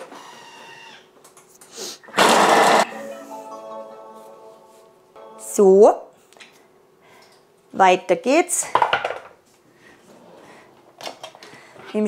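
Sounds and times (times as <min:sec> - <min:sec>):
food processor blades chopping: 0:02.2 - 0:02.8.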